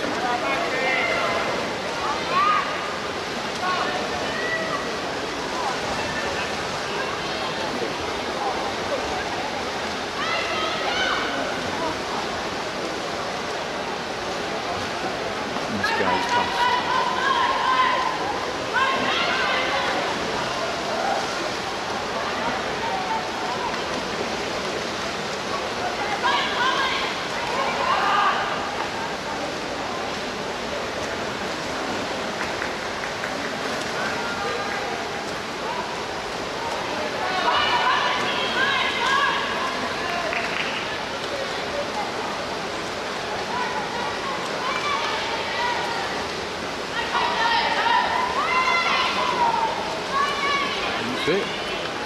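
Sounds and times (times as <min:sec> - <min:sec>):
swimmers splashing: 0:00.0 - 0:52.0
spectators shouting: 0:15.7 - 0:20.2.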